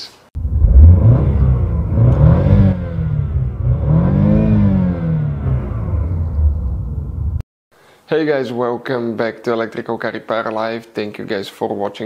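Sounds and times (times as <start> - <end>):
car engine revving: 0.4 - 7.4.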